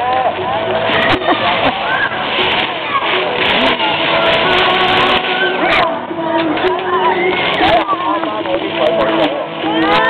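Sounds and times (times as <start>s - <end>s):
fountain jets spraying water: 0.0s - 10.0s.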